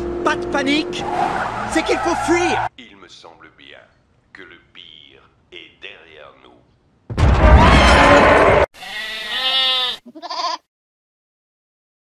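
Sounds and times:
bleats: 7.6s - 10.7s.

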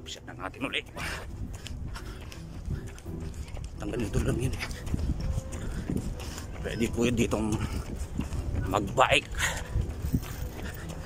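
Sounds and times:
jogging footsteps thudding: 0.8s - 11.0s
wind on microphone: 1.0s - 11.0s.

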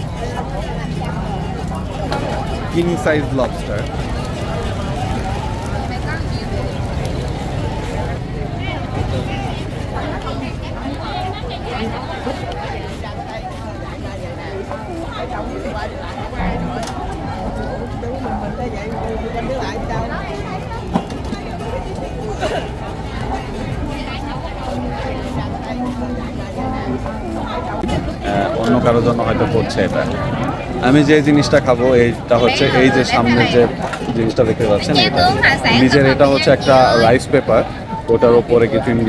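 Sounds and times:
indistinct voices: 0.0s - 38.1s
low traffic rumble: 0.0s - 39.0s
people talking: 0.0s - 39.0s.

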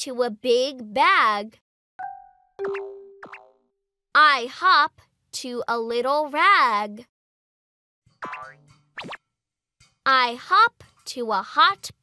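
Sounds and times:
cartoon springy boing: 2.1s - 3.6s, 8.2s - 9.2s.

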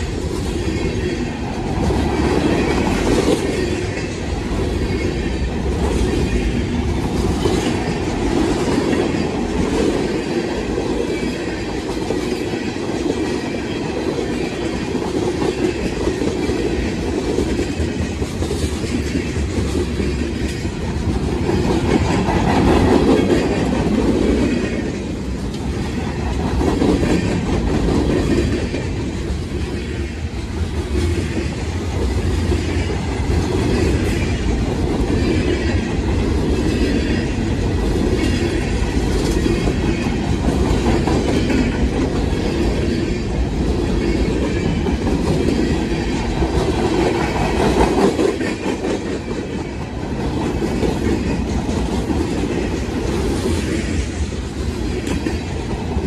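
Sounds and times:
freight train rolling rumble: 0.0s - 56.0s
train wheel clicks: 30.6s - 56.0s.

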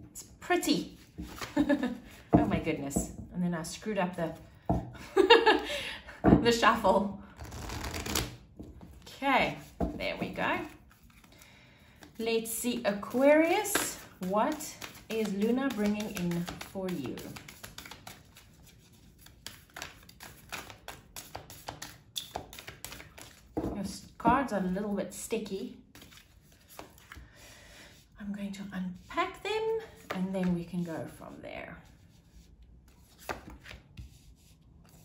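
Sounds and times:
cards being shuffled: 1.0s - 1.8s, 7.4s - 9.8s, 10.6s - 11.4s, 12.0s - 23.6s, 25.9s - 27.2s, 32.9s - 34.2s
cards tapping and snapping: 13.7s - 18.5s, 19.2s - 23.6s.

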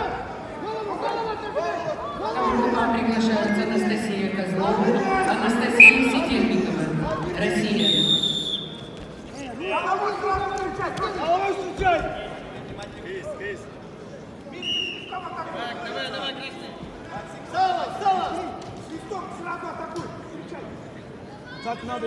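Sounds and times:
voices echoing in an arena: 0.0s - 22.0s
brief high tone: 4.6s - 7.9s.

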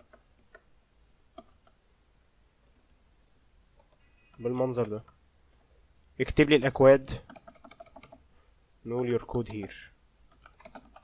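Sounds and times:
keyboard or mouse clicks: 0.0s - 0.7s, 1.3s - 1.8s, 2.6s - 5.7s, 7.0s - 8.2s, 9.2s - 11.0s.

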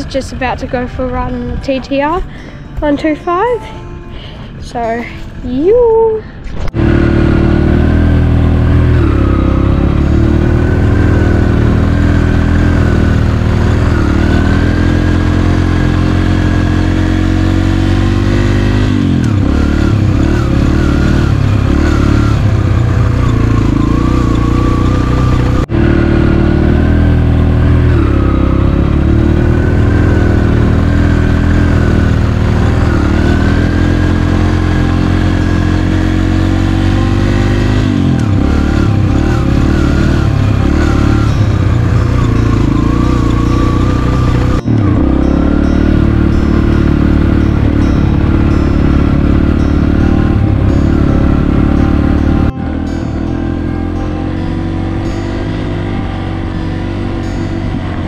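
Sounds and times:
dirt bike engine running: 0.0s - 3.4s, 6.5s - 58.0s.

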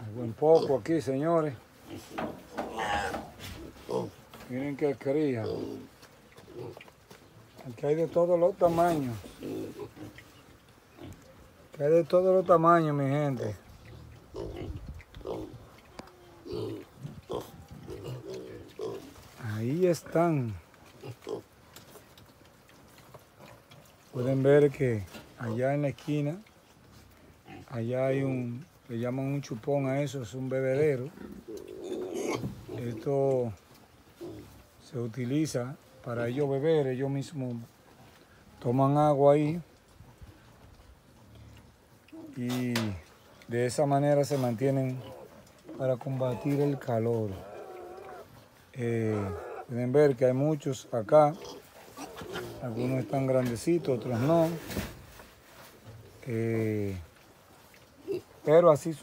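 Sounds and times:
piglets shuffling and rooting: 0.0s - 59.0s
piglets grunting: 1.6s - 4.3s, 8.8s - 11.3s, 13.3s - 19.2s, 20.9s - 21.6s, 31.0s - 33.1s, 44.9s - 48.4s, 49.0s - 49.8s, 51.1s - 54.4s.

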